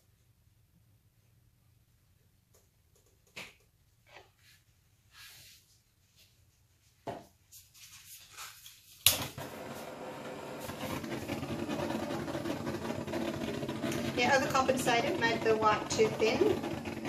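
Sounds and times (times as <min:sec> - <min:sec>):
torch flame hissing: 0:09.4 - 0:17.0
woman speaking: 0:14.1 - 0:16.6.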